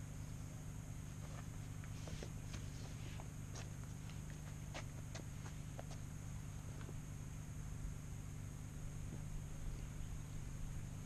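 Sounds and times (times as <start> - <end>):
footsteps on road: 0.9 - 7.4.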